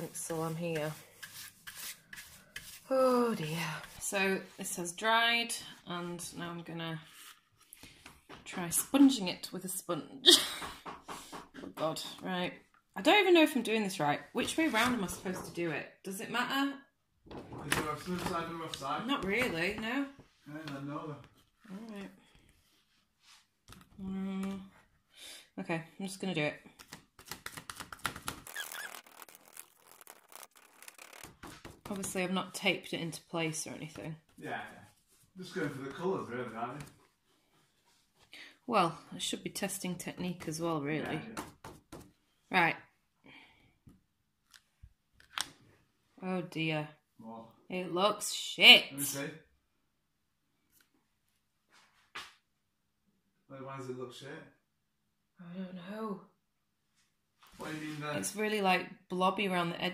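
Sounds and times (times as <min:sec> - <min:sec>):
paintbrush scraping on cardboard: 0:00.0 - 0:04.6
sponge tapping on cardboard: 0:41.3 - 0:42.2.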